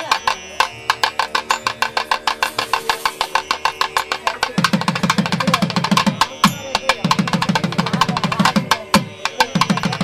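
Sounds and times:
rapid drum beats: 0.0 - 10.0.

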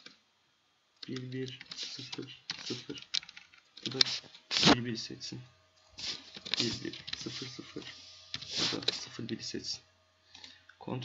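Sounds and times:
computer keyboard typing: 1.0 - 4.1.

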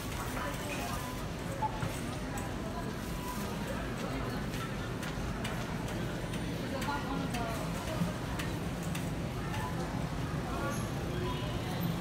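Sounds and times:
chatter of shoppers: 0.0 - 12.0.

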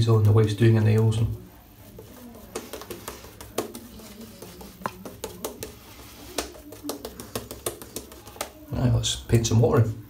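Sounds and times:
shaving brush lathering: 0.0 - 8.6.

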